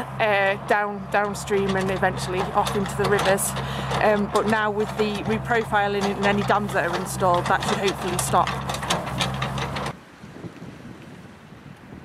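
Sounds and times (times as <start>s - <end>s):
diesel engine running: 0.0s - 10.0s
wind buffeting microphone: 0.0s - 12.0s.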